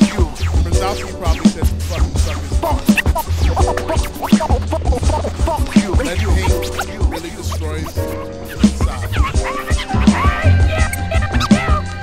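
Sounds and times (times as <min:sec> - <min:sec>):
hip hop beat with heavy bass: 0:00.0 - 0:12.0
turntable scratching: 0:00.0 - 0:12.0.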